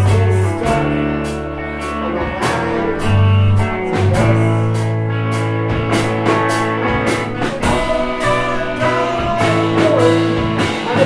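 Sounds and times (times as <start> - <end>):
live rock band playing: 0.0 - 11.0
strummed electric guitar: 0.0 - 11.0
cymbal and drum hits: 6.0 - 10.8.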